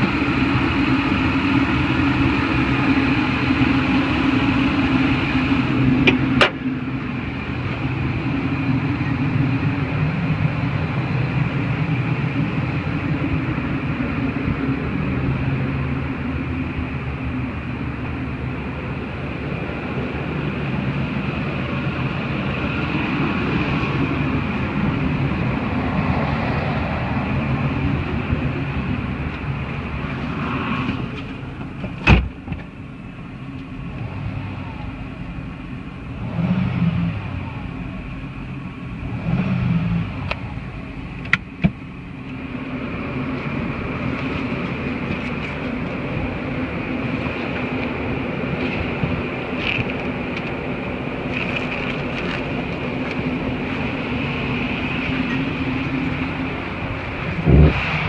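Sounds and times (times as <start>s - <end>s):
car engine idling: 0.0s - 58.0s
car door shutting: 31.6s - 32.7s.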